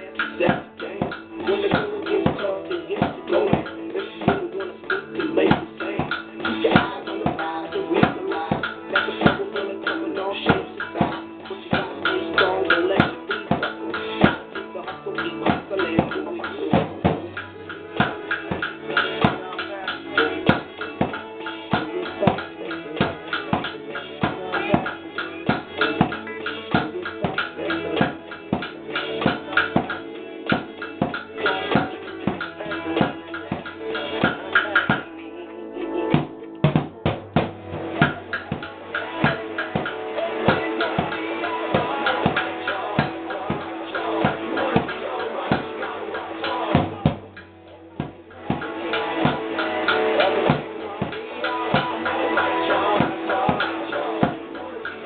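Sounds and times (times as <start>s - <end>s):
recorded song with guitar: 0.0s - 55.0s
drums struck with sticks: 0.2s - 9.6s, 10.5s - 35.1s, 36.2s - 45.8s, 46.4s - 54.4s.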